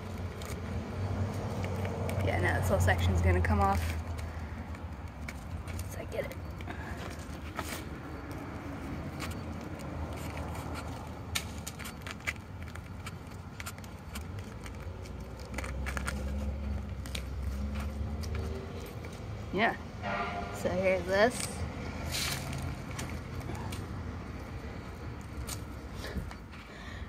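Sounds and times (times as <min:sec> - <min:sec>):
low traffic rumble: 0:00.0 - 0:27.0.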